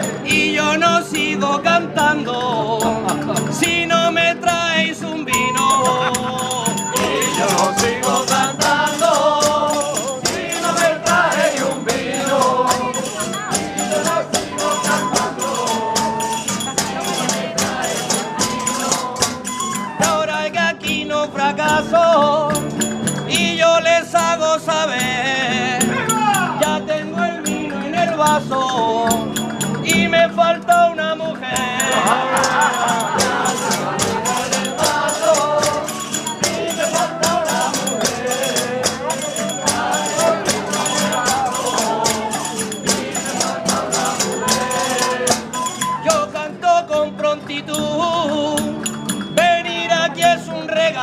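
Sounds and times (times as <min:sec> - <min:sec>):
shaken and struck percussion: 0:00.0 - 0:51.0
wavering melody line: 0:05.6 - 0:20.0, 0:32.0 - 0:46.3.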